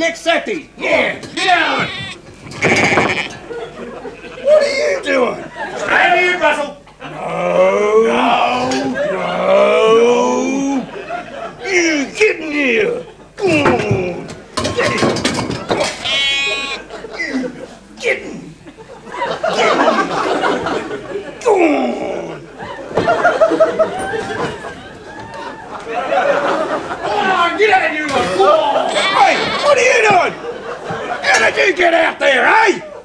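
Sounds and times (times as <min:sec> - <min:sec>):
sheep bleating: 0:01.4 - 0:03.4, 0:15.9 - 0:16.9, 0:28.9 - 0:30.0.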